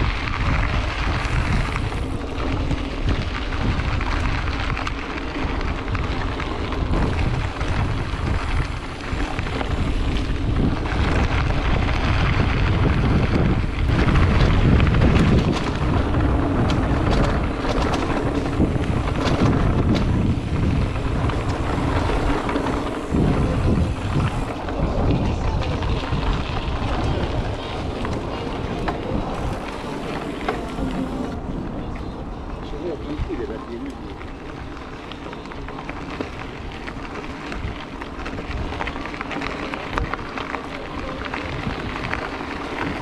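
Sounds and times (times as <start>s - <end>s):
tyres crunching on gravel: 0.0s - 31.5s, 32.8s - 43.0s
bike rattling and knocking: 0.0s - 43.0s
wind buffeting microphone: 0.0s - 43.0s.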